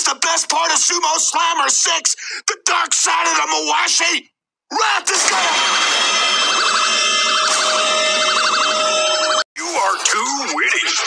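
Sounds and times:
warbling electronic siren tones: 5.7 - 9.4.

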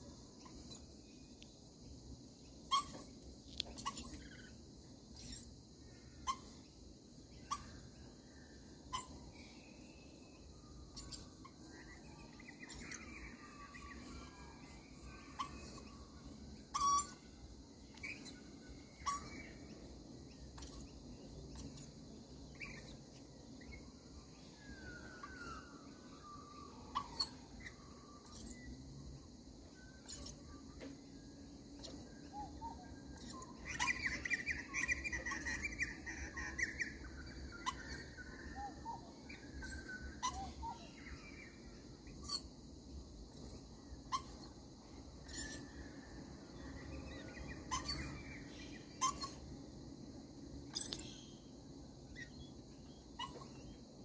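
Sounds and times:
high bird chirps: 2.7 - 5.5, 7.3 - 8.1, 8.9 - 28.7, 29.6 - 30.9, 31.7 - 42.5, 43.4 - 44.6, 45.2 - 45.8, 46.7 - 49.6, 50.7 - 51.5, 52.1 - 53.8
bird chattering calls: 33.2 - 38.8.

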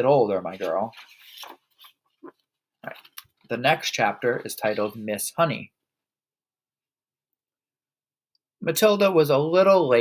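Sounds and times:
book pages turning: 0.4 - 5.0.

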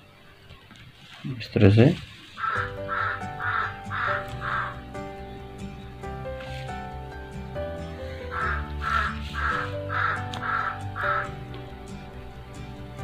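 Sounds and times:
soft background music: 0.0 - 13.0
crow cawing: 2.4 - 4.9, 8.3 - 11.4.

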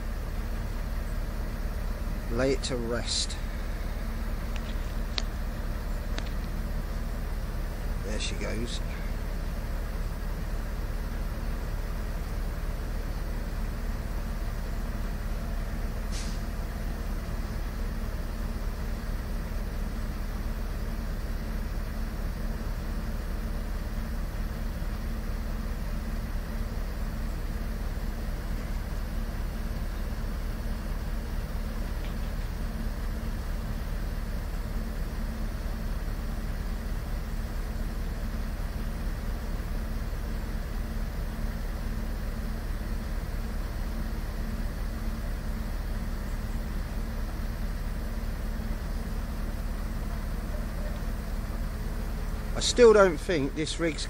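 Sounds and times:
heavy diesel engine droning: 0.0 - 54.0.

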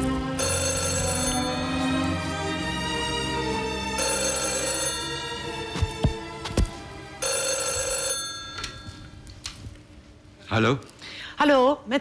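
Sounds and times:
telephone bell ringing: 0.4 - 1.9, 4.0 - 5.6, 7.2 - 9.1.

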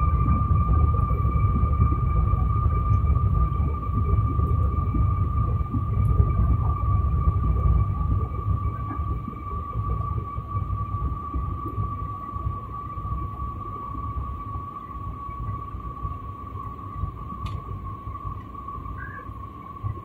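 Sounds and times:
continuous high whine: 0.0 - 20.0.

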